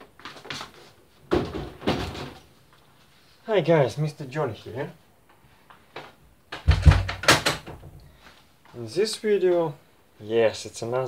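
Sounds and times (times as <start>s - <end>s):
hollow knocks of television on tile floor: 6.5s - 7.9s.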